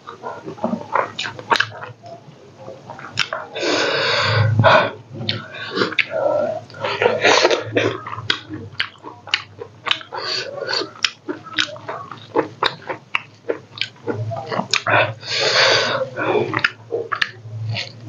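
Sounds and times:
wet chewing and lip-smacking: 0:00.1 - 0:03.5, 0:05.2 - 0:18.0.

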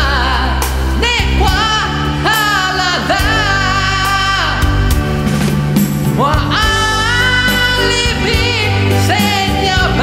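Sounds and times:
man singing with vibrato: 0:00.0 - 0:05.2, 0:06.0 - 0:10.0
pop band with bass and drums: 0:00.0 - 0:10.0.

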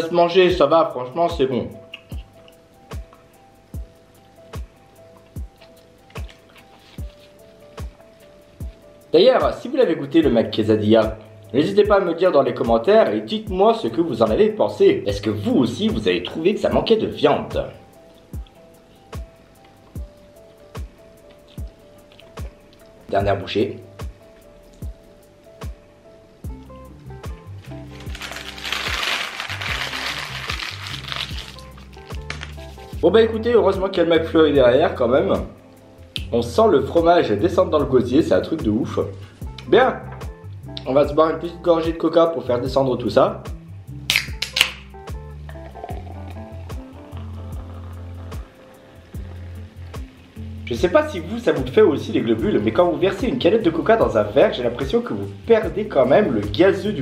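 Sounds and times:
background music with beat: 0:01.3 - 0:09.6, 0:15.4 - 0:33.4, 0:38.6 - 0:41.2, 0:43.5 - 0:54.2
paper wrapper crumpling: 0:27.6 - 0:32.9
can cracked open with hiss: 0:27.9 - 0:32.6, 0:44.1 - 0:45.0
cola poured fizzing into glass: 0:45.5 - 0:50.0.

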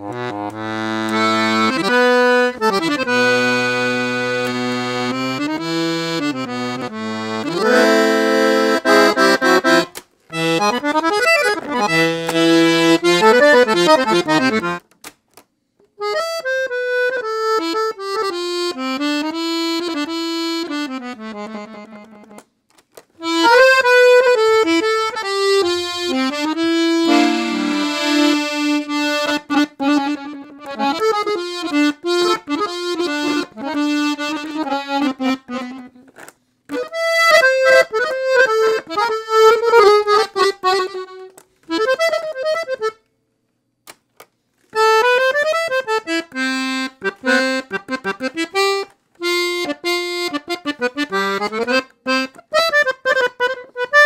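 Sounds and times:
piano accordion melodic phrases: 0:00.0 - 0:14.9, 0:16.0 - 0:22.5, 0:23.2 - 0:43.1, 0:44.7 - 0:54.0.

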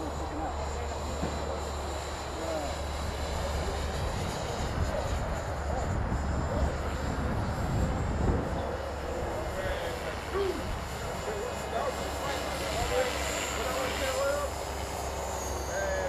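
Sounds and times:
distant voices: 0:00.0 - 0:16.0
rc helicopter high whine: 0:00.0 - 0:16.0.

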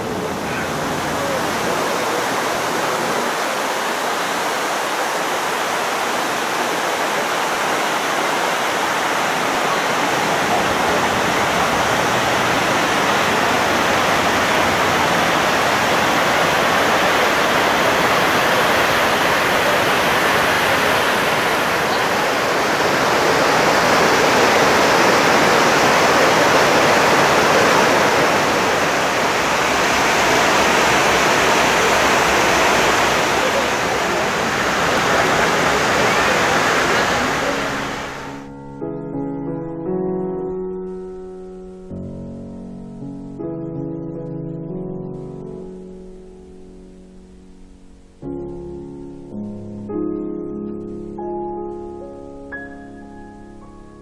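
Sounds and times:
waterfall rushing: 0:00.0 - 0:38.5.

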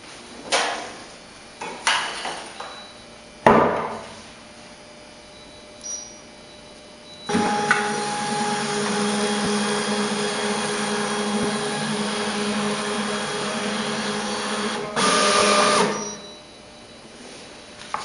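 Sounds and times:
label printer motor whirring: 0:07.3 - 0:16.2.

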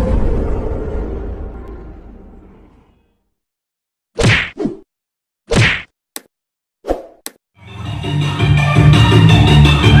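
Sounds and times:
music: 0:07.6 - 0:10.0.

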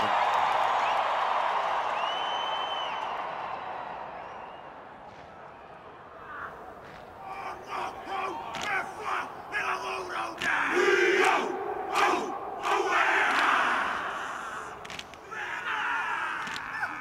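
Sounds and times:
shouted calls: 0:06.1 - 0:17.0
group chanting: 0:06.5 - 0:17.0
slaps on chests and thighs: 0:06.8 - 0:07.2, 0:08.4 - 0:09.0, 0:10.3 - 0:11.4, 0:12.0 - 0:13.8, 0:14.8 - 0:15.3, 0:16.3 - 0:17.0.

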